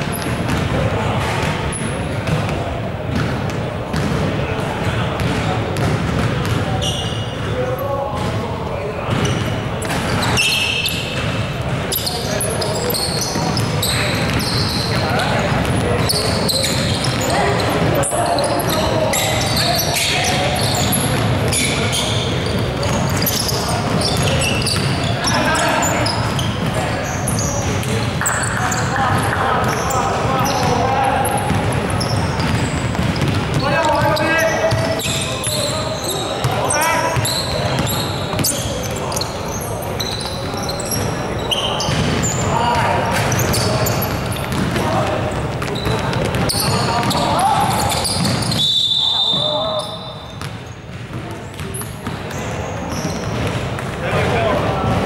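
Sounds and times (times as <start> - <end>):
basketball bouncing: 0.0 - 7.5, 9.1 - 35.7, 40.0 - 48.6, 50.4 - 55.0
sneaker squeaks: 0.0 - 55.0
players calling out: 0.1 - 50.7.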